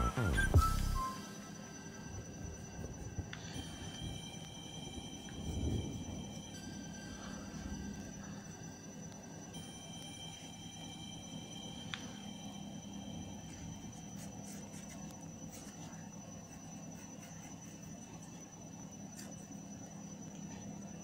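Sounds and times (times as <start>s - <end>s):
faint background music: 0.0s - 18.0s.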